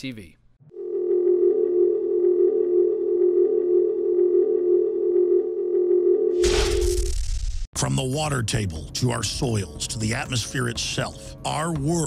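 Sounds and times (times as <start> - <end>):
steady electronic tone: 0.6 - 7.6.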